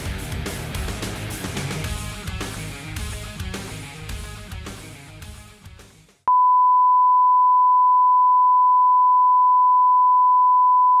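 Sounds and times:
rock music: 0.0s - 6.2s.

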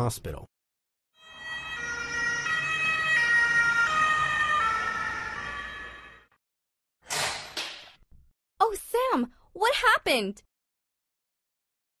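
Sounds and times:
ambulance siren: 1.2s - 6.4s.

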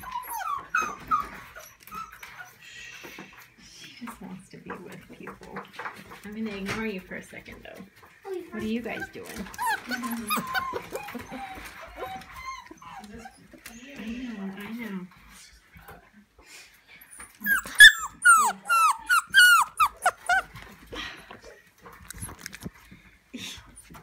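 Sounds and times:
puppies yelping: 0.0s - 2.6s, 8.8s - 13.6s, 17.2s - 20.7s.

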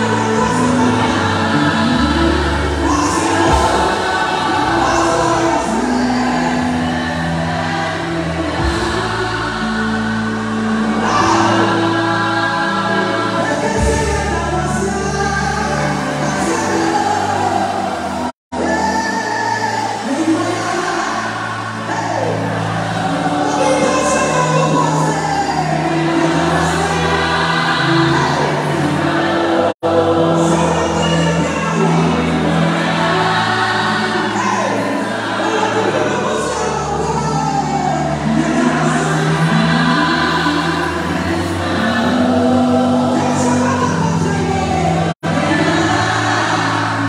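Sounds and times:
band with bass notes: 0.0s - 18.9s
lead singer and choir: 0.0s - 47.0s.

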